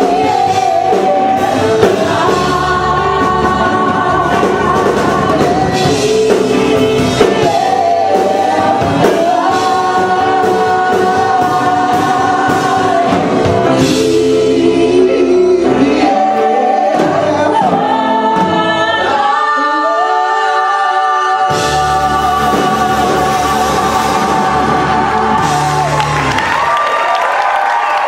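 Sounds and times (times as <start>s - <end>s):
rock band playing: 0.0s - 19.0s, 21.5s - 26.9s
voices singing in harmony: 0.0s - 26.7s.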